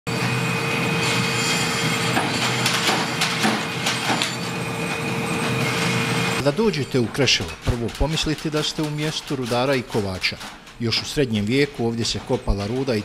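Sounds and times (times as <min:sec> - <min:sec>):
forge mechanical rush and hum: 0:00.1 - 0:08.0.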